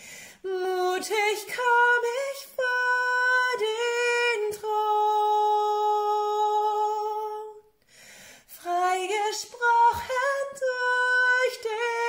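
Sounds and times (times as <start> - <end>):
woman singing a cappella: 0.0 - 7.8, 8.4 - 12.0.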